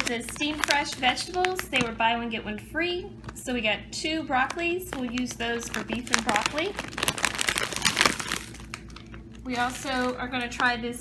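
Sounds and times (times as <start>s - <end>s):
plastic bags crinkling: 0.0s - 2.2s, 4.4s - 10.8s.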